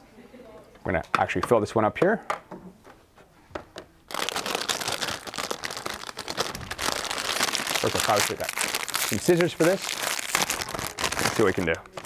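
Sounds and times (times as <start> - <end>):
plastic bag crinkling: 4.1 - 12.0.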